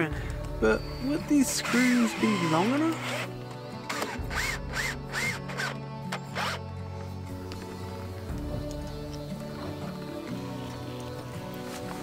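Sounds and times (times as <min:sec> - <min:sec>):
background music: 0:00.0 - 0:12.0
cordless drill driving screws: 0:01.6 - 0:06.7.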